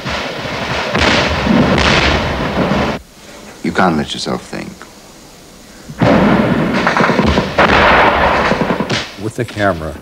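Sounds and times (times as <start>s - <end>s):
gunfire volley: 0.0s - 3.0s, 6.0s - 9.3s.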